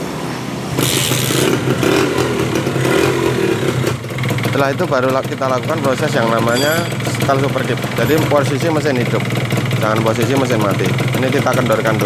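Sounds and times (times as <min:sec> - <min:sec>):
motorcycle engine running: 0:00.8 - 0:12.0.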